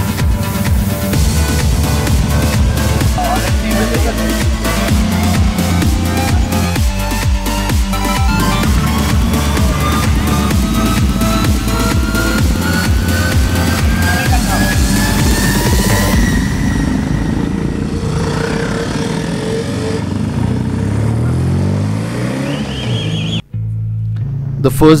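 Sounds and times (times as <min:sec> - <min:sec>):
electronic dance music: 0:00.0 - 0:19.2
motorcycle engines accelerating: 0:00.0 - 0:23.4
steady engine drone: 0:00.0 - 0:23.4.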